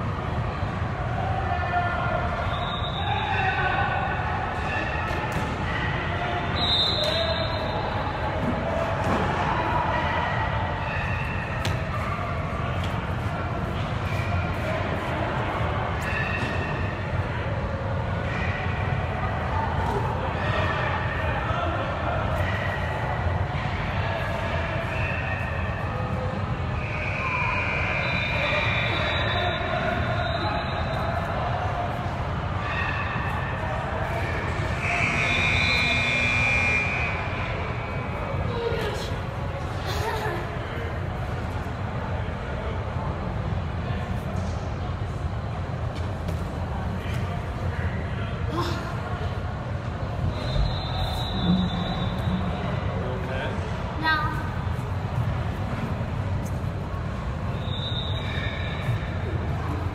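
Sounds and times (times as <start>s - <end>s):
many voices talking: 0.0s - 59.9s.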